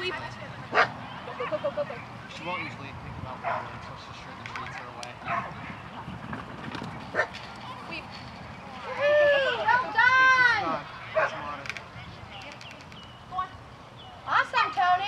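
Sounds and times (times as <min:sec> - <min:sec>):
dog barking: 0:00.7 - 0:01.0, 0:03.4 - 0:03.7, 0:05.2 - 0:05.6.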